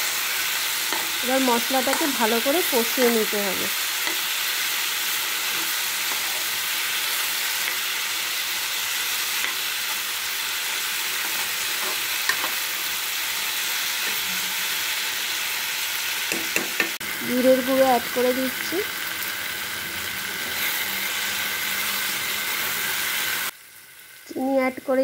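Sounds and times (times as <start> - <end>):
food sizzling in hot oil: 0.0 - 25.0
spatula tapping pan: 16.3 - 17.0.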